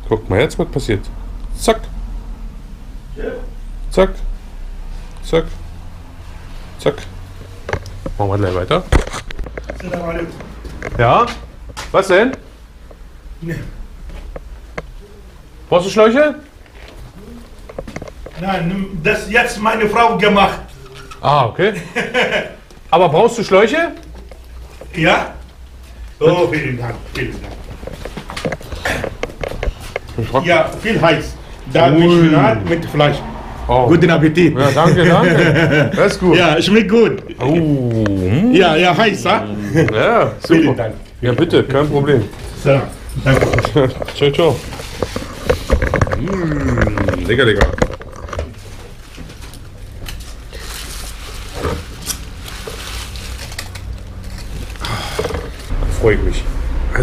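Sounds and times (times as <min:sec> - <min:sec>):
camera rubbing against shirt: 0:43.2 - 0:46.0
aluminium foil crinkling: 0:43.6 - 0:55.7.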